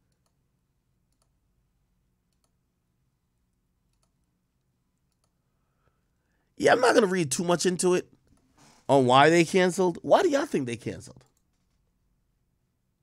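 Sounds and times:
faint clicks: 0:01.1 - 0:01.4, 0:02.3 - 0:02.6, 0:03.9 - 0:05.4.

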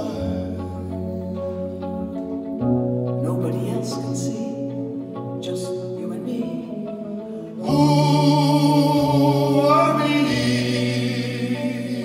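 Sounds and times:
voices singing with vibrato: 0:00.0 - 0:01.3, 0:05.4 - 0:12.0.

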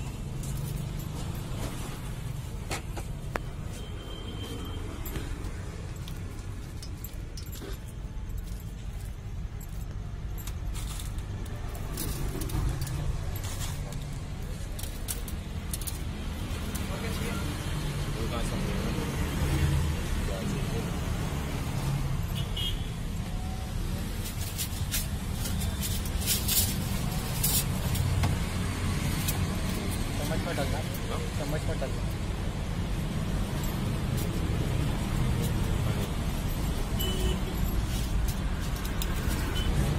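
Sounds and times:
light metallic clinks and jingles: 0:00.0 - 0:39.9
low traffic rumble: 0:00.0 - 0:39.9.

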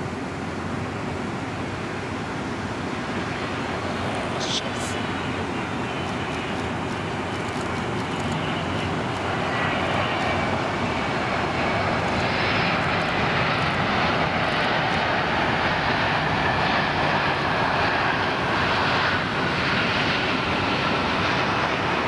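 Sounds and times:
jet engines roaring: 0:00.0 - 0:22.0.

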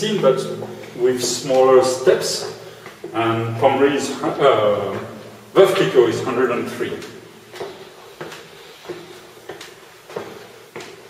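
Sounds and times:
footsteps on brick stairs: 0:00.0 - 0:11.0.

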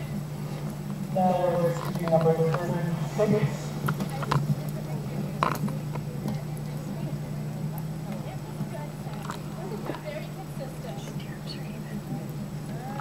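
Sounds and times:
faint voices: 0:00.0 - 0:13.0
steady low hum: 0:00.0 - 0:13.0.

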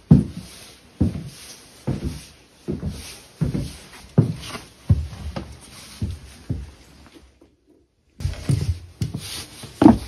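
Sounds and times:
footsteps on wooden floorboards: 0:00.0 - 0:07.6, 0:08.2 - 0:10.0.

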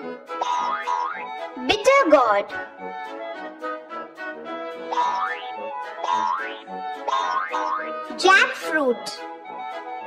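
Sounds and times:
light children's background music: 0:00.0 - 0:10.0.

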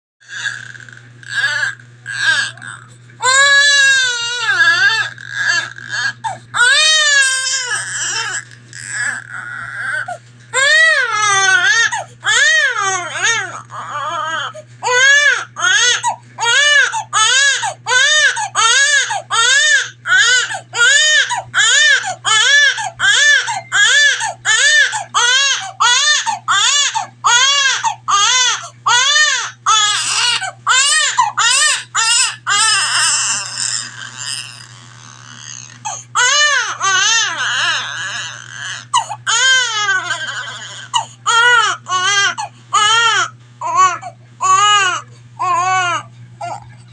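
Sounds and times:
newborn baby crying: 0:00.3 - 0:46.7.

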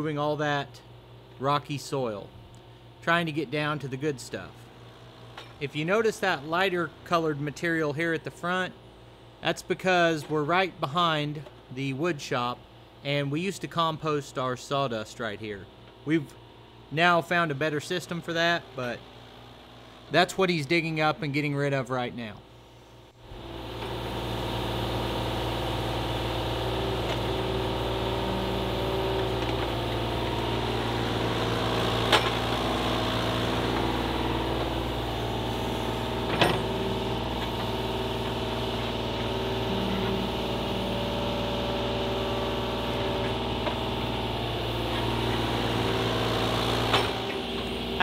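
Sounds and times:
excavator diesel engine running: 0:23.4 - 0:48.0.

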